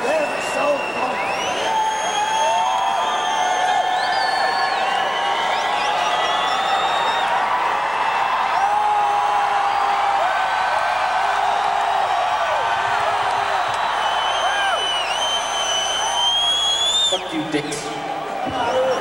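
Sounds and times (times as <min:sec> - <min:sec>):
long whistles: 0:00.0 - 0:07.4, 0:13.6 - 0:17.3
arena crowd cheering: 0:00.0 - 0:19.0
whoo shouts: 0:01.6 - 0:17.0.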